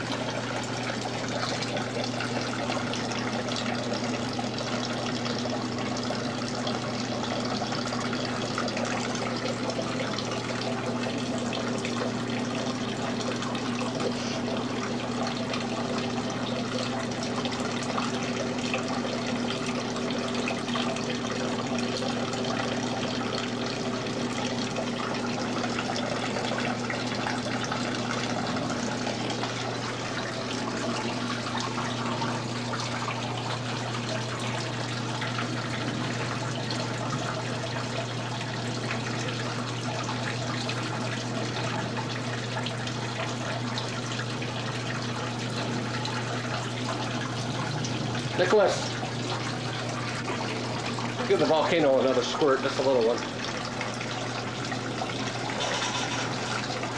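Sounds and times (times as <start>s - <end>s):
running water: 0.0s - 56.9s.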